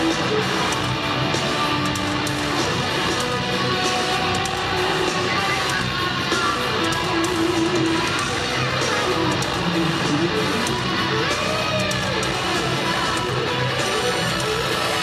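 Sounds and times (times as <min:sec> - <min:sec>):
distorted electric guitars: 0:00.0 - 0:15.0
drums and cymbals: 0:00.0 - 0:15.0.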